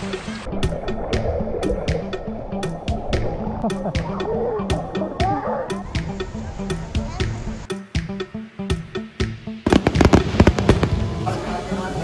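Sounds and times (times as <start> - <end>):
background music with beat: 0.0 - 12.0
fireworks bangs and crackles: 9.6 - 12.0.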